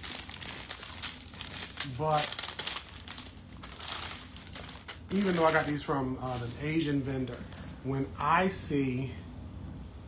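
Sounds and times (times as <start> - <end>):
plastic wrapping crinkling: 0.0 - 7.8.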